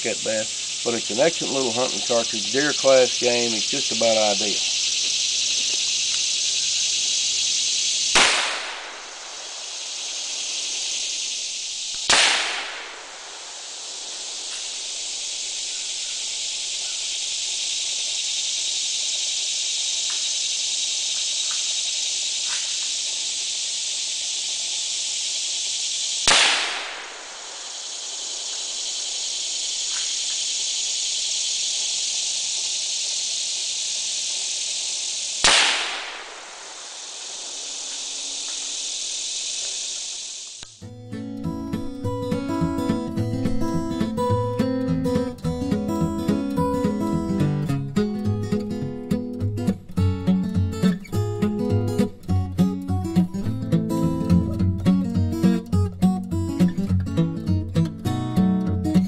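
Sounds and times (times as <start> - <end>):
rifle shots: 8.1 - 10.1, 12.0 - 14.6, 26.2 - 28.5, 35.4 - 37.9.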